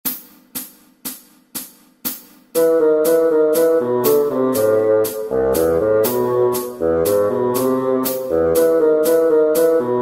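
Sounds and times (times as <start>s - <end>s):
hi-hat-like click track ticks: 0.0s - 9.9s.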